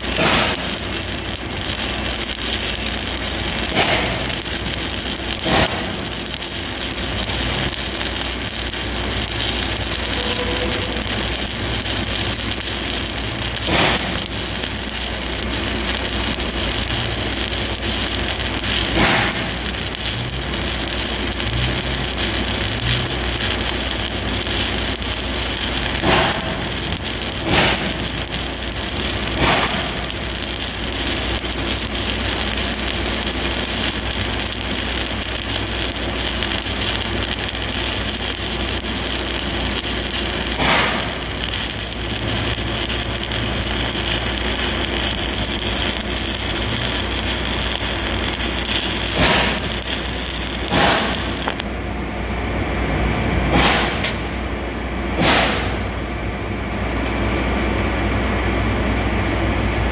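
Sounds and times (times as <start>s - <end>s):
welding arc pops: 0.0s - 51.9s, 53.2s - 54.5s, 55.2s - 55.8s
welding arc crackling: 0.0s - 56.0s.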